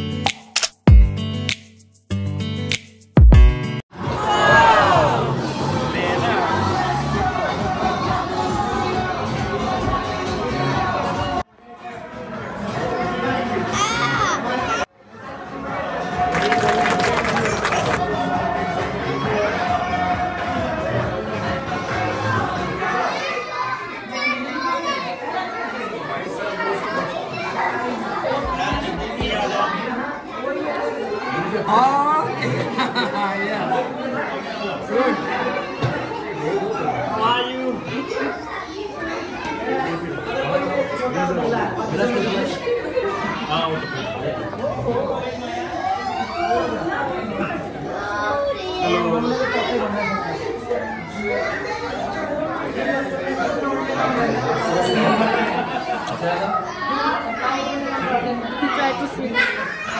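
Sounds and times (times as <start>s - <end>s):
many people talking: 3.3s - 59.9s
children's voices: 12.7s - 14.9s, 21.4s - 28.7s, 33.7s - 41.4s, 42.3s - 59.9s.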